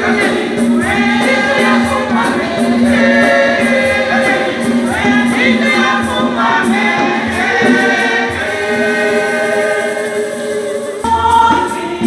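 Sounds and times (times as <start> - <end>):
woman singing lead: 0.0 - 12.0
women's choir singing a hymn: 0.0 - 12.0.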